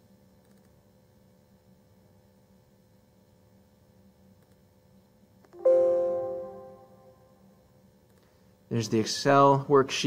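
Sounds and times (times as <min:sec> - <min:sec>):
electronic notification chime: 0:05.6 - 0:07.2.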